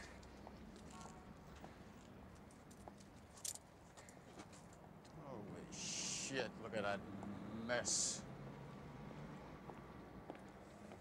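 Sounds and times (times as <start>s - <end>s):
footsteps of hard shoes on asphalt: 9.7s - 11.0s.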